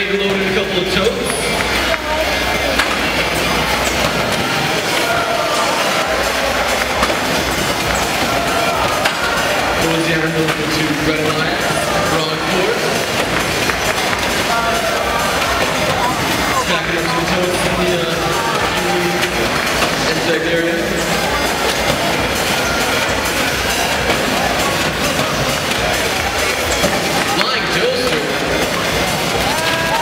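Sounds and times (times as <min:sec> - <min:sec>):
crowd chatter echoing: 0:00.0 - 0:30.0
music over public address: 0:00.0 - 0:30.0.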